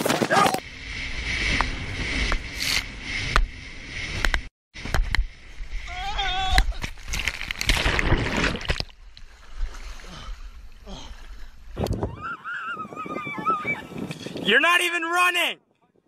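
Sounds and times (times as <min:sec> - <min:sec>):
wind buffeting microphone: 0:11.4 - 0:14.6.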